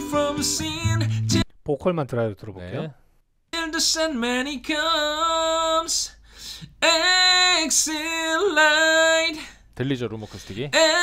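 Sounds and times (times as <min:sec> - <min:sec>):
person singing long held notes: 0:00.0 - 0:01.4.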